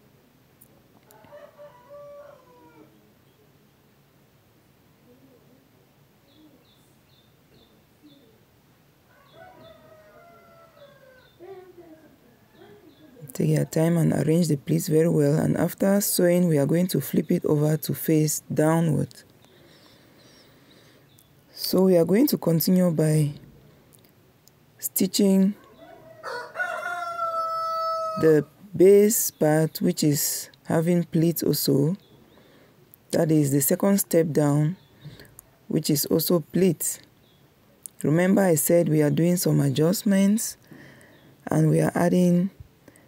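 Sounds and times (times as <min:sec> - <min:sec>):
animal call: 0:01.1 - 0:03.2, 0:09.1 - 0:13.3
longer pitched bird call: 0:09.1 - 0:11.5.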